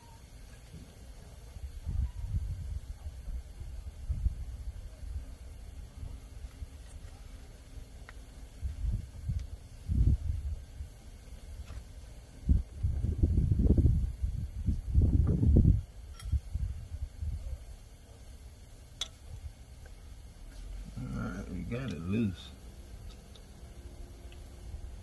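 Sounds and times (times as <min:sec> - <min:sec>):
low muffled rumbling: 0:12.2 - 0:18.2.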